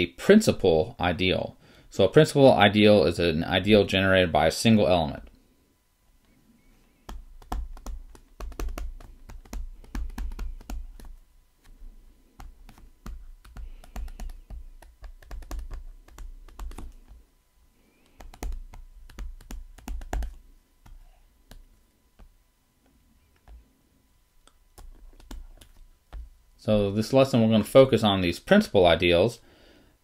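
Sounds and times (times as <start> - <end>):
stylus clicking on tablet screen: 6.9 - 11.2, 12.4 - 17.2, 18.0 - 23.6, 24.4 - 26.3.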